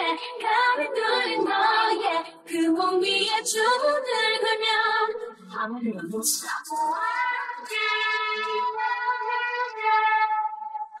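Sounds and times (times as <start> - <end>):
woman singing a cappella: 0.0 - 10.4.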